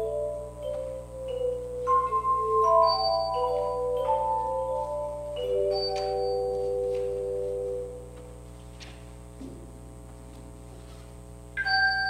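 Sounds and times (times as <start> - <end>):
sustained keyboard chord: 0.0 - 8.5.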